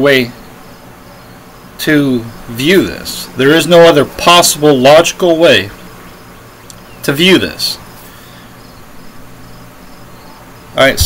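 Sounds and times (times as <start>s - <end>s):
faint high-pitched chirping: 0.0s - 11.0s
low hum and hiss: 0.0s - 11.0s.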